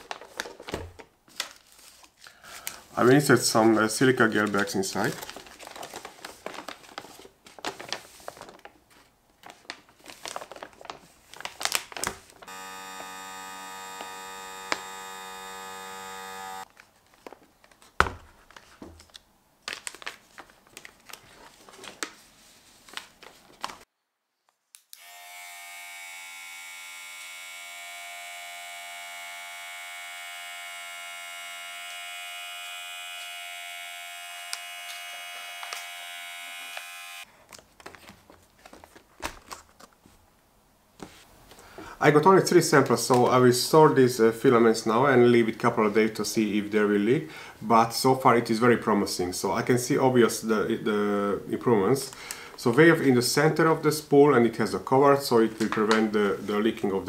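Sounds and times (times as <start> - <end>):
plastic bags crinkling and clicking: 0.0 - 2.9, 4.3 - 12.5, 16.6 - 22.2, 37.3 - 40.0, 55.5 - 56.2
electric vacuum pump whining: 12.4 - 16.7, 25.0 - 37.2.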